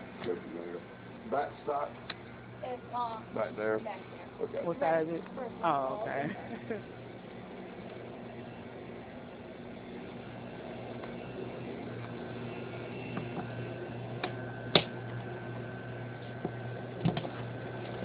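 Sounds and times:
box fan humming: 0.0s - 18.0s.

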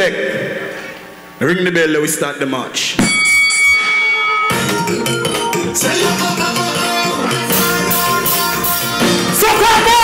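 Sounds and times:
boxing bell ringing: 3.0s - 7.1s
live band playing soca music: 4.5s - 10.0s.

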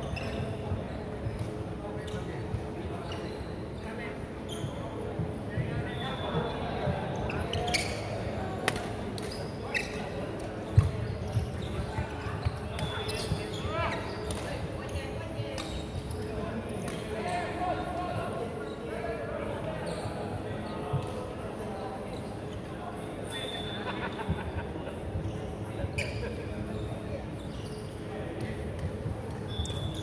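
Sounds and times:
shoe squeaks: 0.0s - 1.2s, 2.0s - 5.0s, 5.6s - 8.4s, 9.3s - 14.4s, 15.6s - 16.3s, 19.8s - 20.9s, 22.1s - 24.2s, 25.2s - 28.5s, 29.4s - 30.0s
murmur of voices: 0.0s - 30.0s
rackets striking shuttlecock: 8.6s - 9.3s.

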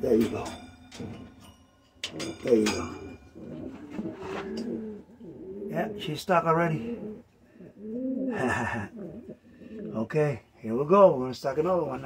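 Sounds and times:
pigeon cooing: 2.0s - 10.1s.

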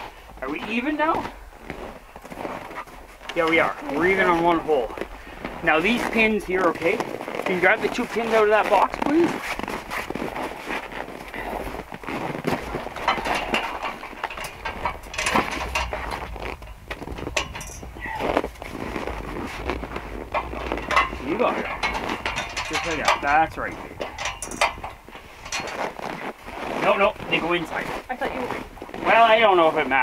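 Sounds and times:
metal scaffold clicks and knocks: 12.4s - 26.0s
low talk: 19.6s - 24.5s.

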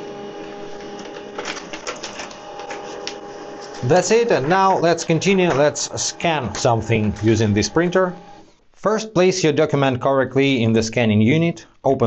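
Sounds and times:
laser printer motor running: 0.1s - 8.5s
paper feed clicks: 0.8s - 5.7s.

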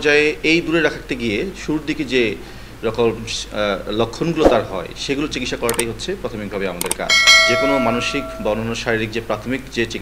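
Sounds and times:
bell-like chime: 7.1s - 8.7s.

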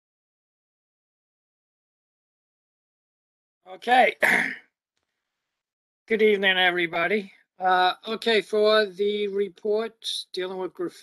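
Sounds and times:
person speaking: 3.7s - 4.6s, 6.1s - 11.0s
person clearing throat: 4.2s - 4.7s.

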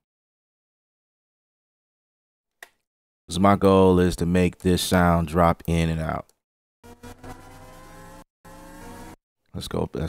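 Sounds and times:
synth riser whoosh: 6.8s - 9.2s.

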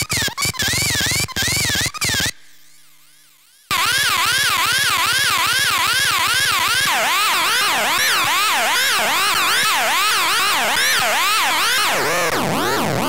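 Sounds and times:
sweeping electronic siren tone: 3.0s - 13.0s.

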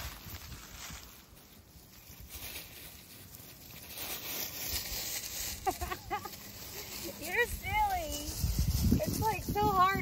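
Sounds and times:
leaves rustling and crackling: 0.0s - 10.0s
puppies scampering through leaves: 0.0s - 10.0s.

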